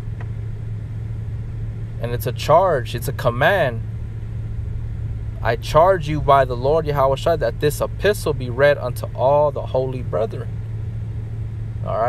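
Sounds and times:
low motor hum and rumble: 0:00.0 - 0:12.0.

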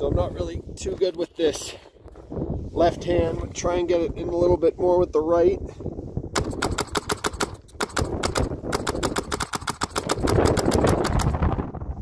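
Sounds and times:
paintball marker firing rapidly: 0:06.4 - 0:11.6.

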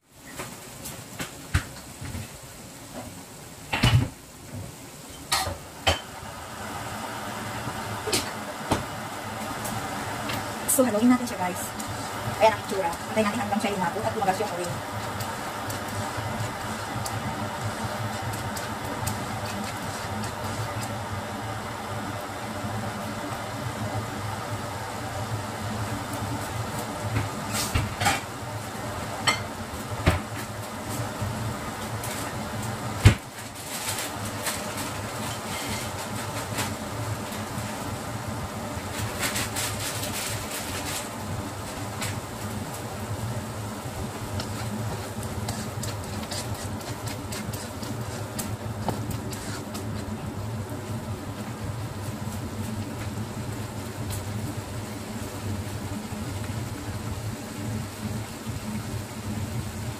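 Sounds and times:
steady mechanical hum: 0:00.0 - 0:59.9
spatula scraping and knocking in wok: 0:44.3 - 0:50.1.

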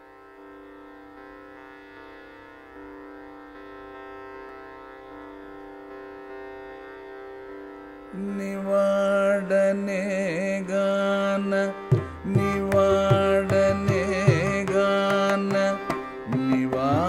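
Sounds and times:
tanpura drone: 0:00.0 - 0:17.0.

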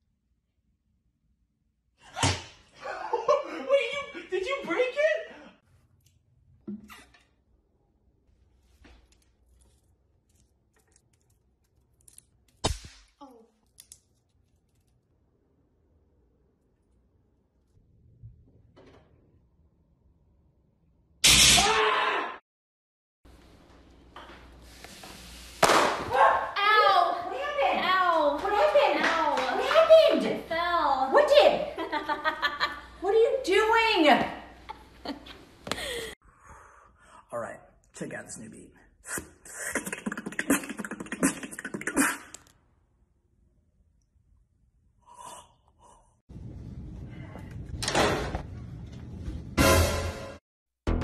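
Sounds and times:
sharp smack: 0:12.6 - 0:13.1, 0:21.2 - 0:21.7, 0:25.6 - 0:26.1.

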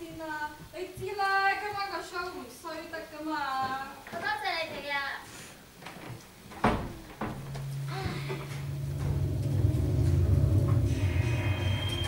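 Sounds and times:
woman speaking: 0:00.0 - 0:05.2.

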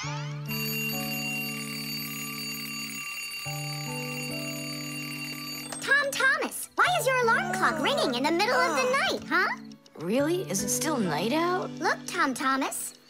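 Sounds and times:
twin-bell alarm clock ringing: 0:00.5 - 0:13.0.

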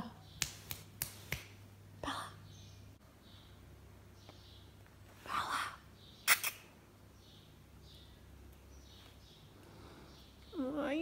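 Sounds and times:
finger snaps: 0:00.4 - 0:01.6.

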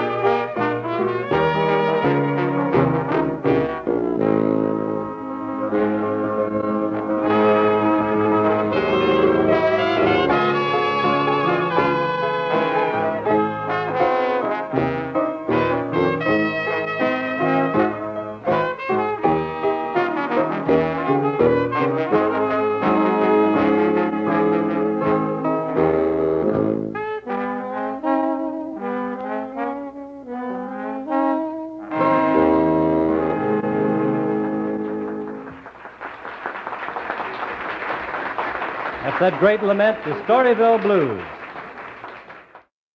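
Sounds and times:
jazz band playing slow blues: 0:00.0 - 0:35.6
trombone: 0:00.0 - 0:35.7
trumpet: 0:00.0 - 0:42.6.

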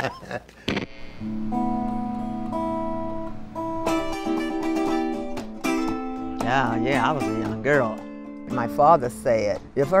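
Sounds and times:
guitar playing slow chords: 0:00.7 - 0:09.8.

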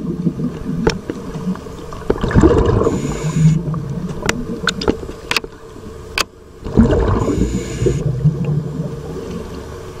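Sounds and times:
faint steady hum: 0:00.0 - 0:10.0
underwater low rumble: 0:00.0 - 0:10.0.

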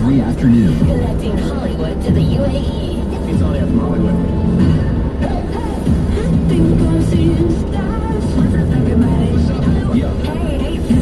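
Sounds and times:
car radio music: 0:00.0 - 0:11.0
road noise: 0:00.0 - 0:11.0
voice over radio music: 0:00.0 - 0:11.0.

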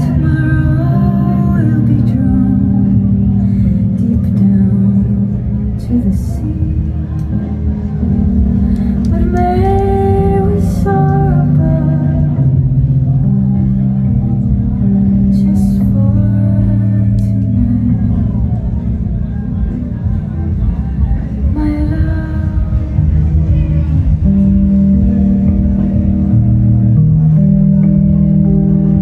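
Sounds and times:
keyboard melody: 0:00.0 - 0:29.0
low bass keyboard notes: 0:00.0 - 0:29.0.

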